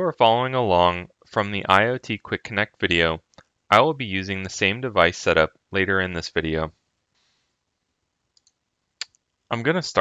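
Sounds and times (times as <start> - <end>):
tiny ticks: 8.3 - 9.3.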